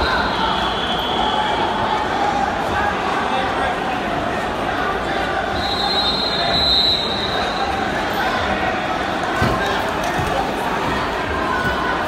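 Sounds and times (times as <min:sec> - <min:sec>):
referee's whistle: 0:00.0 - 0:01.7, 0:05.5 - 0:07.6
crowd murmur: 0:00.0 - 0:12.0.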